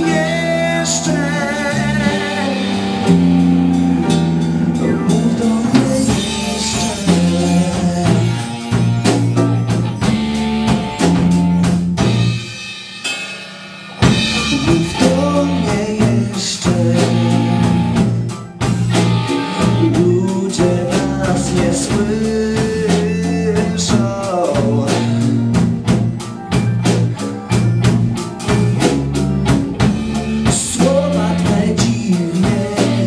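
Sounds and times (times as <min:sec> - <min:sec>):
man singing into a microphone: 0:00.0 - 0:03.2, 0:04.8 - 0:08.8, 0:14.3 - 0:17.8, 0:19.5 - 0:25.5, 0:30.4 - 0:33.0
blues-rock band playing: 0:00.0 - 0:33.0.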